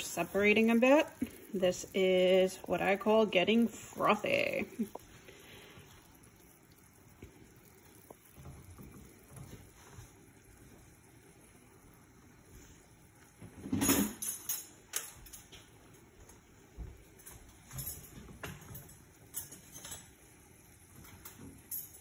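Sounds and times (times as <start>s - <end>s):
spatula stirring liquid: 0.0s - 13.4s
butter and milk simmering: 0.0s - 22.0s.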